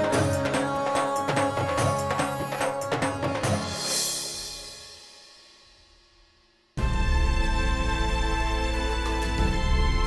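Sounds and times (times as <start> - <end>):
drama score music: 6.8 - 10.0.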